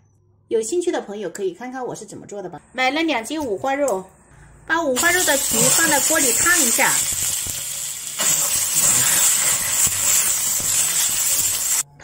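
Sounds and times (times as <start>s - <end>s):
pork skin sizzling in a wok: 5.0s - 11.9s.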